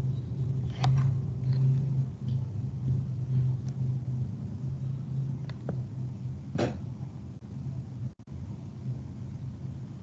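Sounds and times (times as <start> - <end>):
low microphone hum: 0.0 - 10.0.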